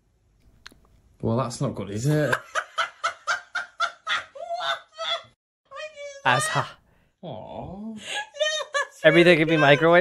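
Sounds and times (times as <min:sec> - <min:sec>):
person laughing: 0:02.2 - 0:05.3, 0:08.1 - 0:10.0.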